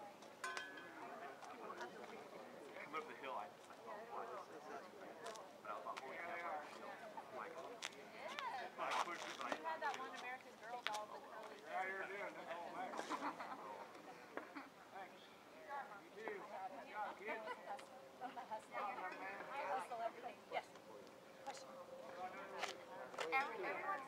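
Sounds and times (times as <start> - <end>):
people talking indistinctly: 0.0 - 24.0.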